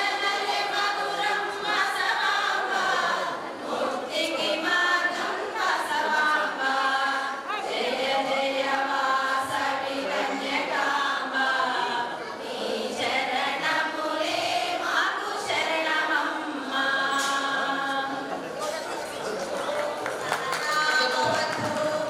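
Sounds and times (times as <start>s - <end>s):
women's choir singing: 0.0s - 18.5s, 20.3s - 22.0s.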